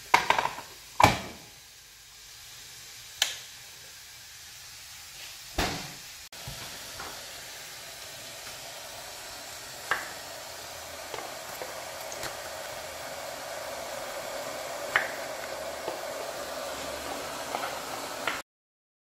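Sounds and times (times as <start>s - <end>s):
electric kettle hissing: 0.0s - 18.4s.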